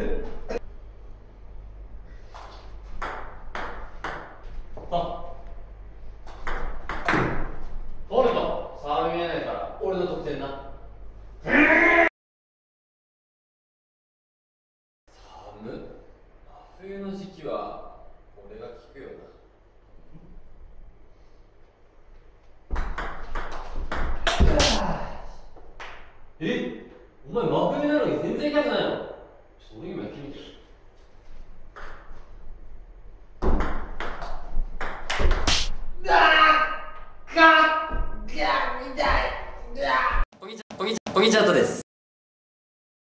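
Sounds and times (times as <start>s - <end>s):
ping pong ball clicking off paddles: 2.3s - 4.6s, 6.2s - 7.3s, 22.7s - 24.7s, 33.4s - 35.7s.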